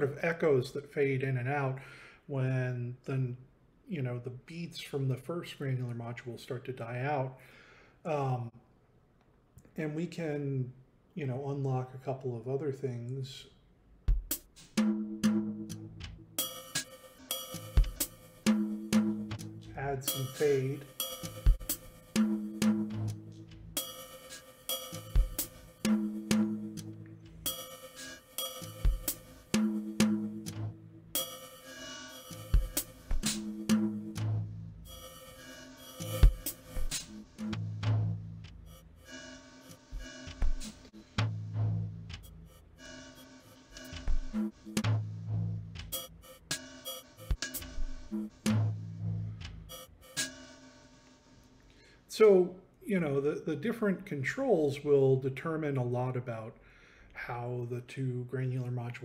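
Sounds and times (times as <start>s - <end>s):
looped drum machine beat with echoes: 14.1s - 51.1s.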